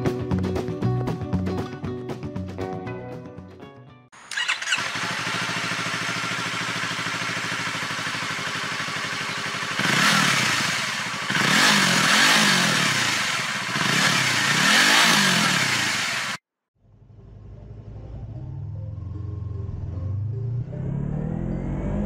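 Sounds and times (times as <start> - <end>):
motorcycle engine starting and revving: 4.2 - 22.0.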